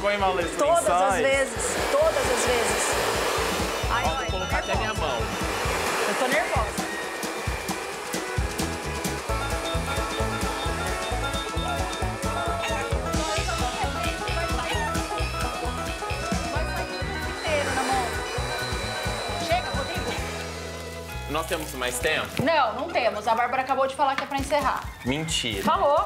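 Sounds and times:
background music with steady beat: 0.0s - 26.0s
hair dryer blowing: 0.8s - 21.1s.

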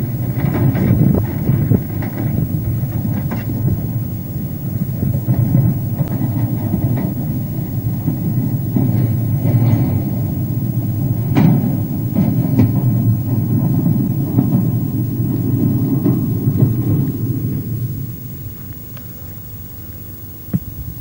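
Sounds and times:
train rumbling slowly: 0.0s - 21.0s.

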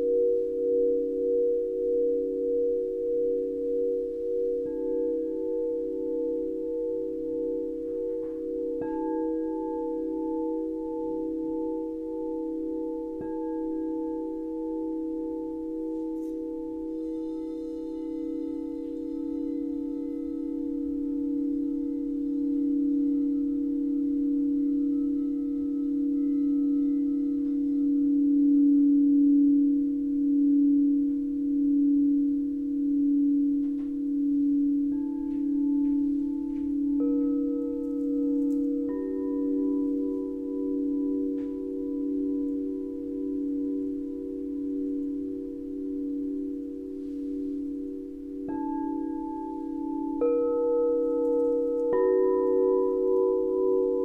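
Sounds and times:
crystal singing bowls ringing: 0.0s - 54.0s.

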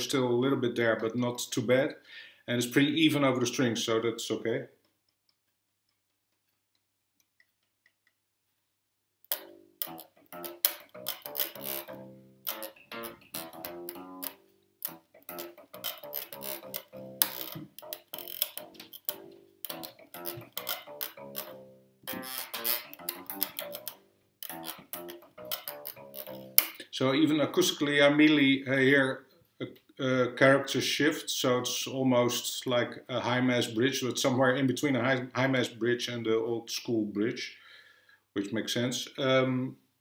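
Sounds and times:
string attack clicks: 9.3s - 27.9s
bass guitar played fingerstyle: 9.3s - 28.8s.

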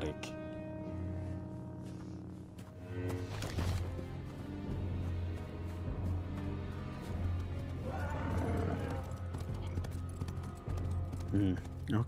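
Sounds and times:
faint music: 0.0s - 12.0s
hoof-like clopping footfalls: 2.6s - 12.0s.

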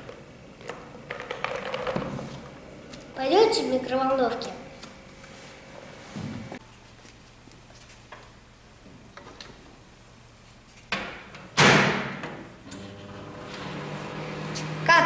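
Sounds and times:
microwave running hum: 12.1s - 15.0s.

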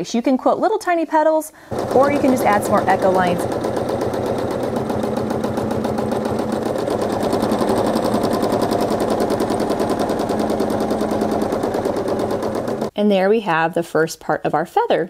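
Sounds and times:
sewing machine running: 1.7s - 12.9s.

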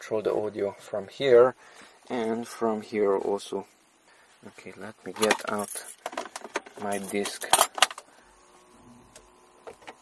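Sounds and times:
low quiet hum: 0.0s - 10.0s.

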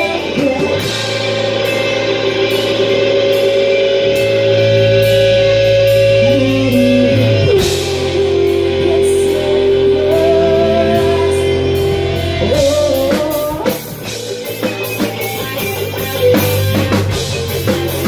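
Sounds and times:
rock band playing: 0.0s - 18.0s
woman singing: 6.2s - 13.8s.

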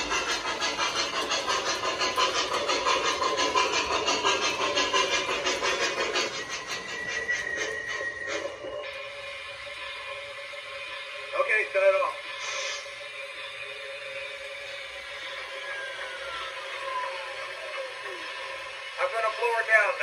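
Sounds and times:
model locomotive hum: 0.0s - 20.0s
radio crew chatter: 11.3s - 12.8s, 17.5s - 20.0s
slowly falling tone: 12.9s - 19.4s.

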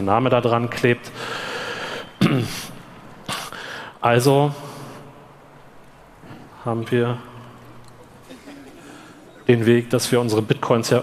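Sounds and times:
man breathing in: 1.2s - 2.2s, 3.4s - 4.0s.

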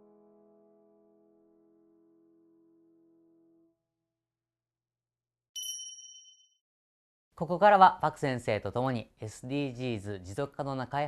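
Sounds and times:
high bright chime ding: 5.6s - 6.5s.

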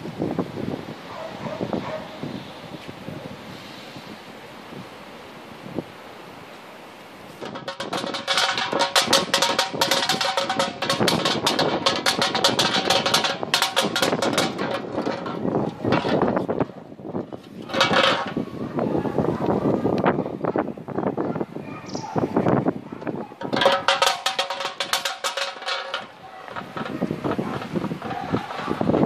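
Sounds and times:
can tumbling on brick paving: 7.3s - 18.6s, 23.4s - 29.0s.

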